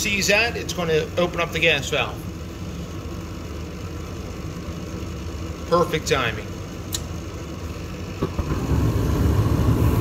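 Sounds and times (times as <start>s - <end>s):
low rumble of burner flame: 0.0s - 10.0s.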